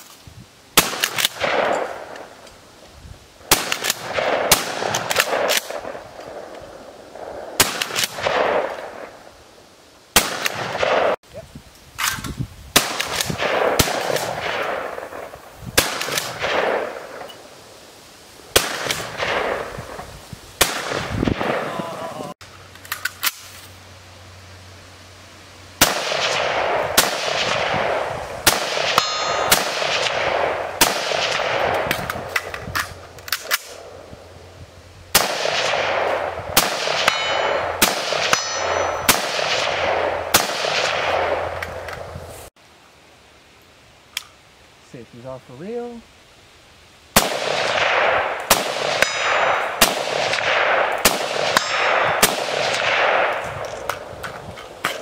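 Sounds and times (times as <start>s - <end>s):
shotgun shots with echo: 0.8s - 2.2s, 3.5s - 6.0s, 7.6s - 9.1s, 10.2s - 11.2s, 12.8s - 17.3s, 18.5s - 19.7s, 20.6s - 21.7s, 25.8s - 32.4s, 35.1s - 41.9s, 47.2s - 53.6s
rapid rifle shots: 3.5s - 6.0s, 10.2s - 11.2s, 12.8s - 17.2s, 25.8s - 32.5s, 35.2s - 41.6s, 47.2s - 53.4s.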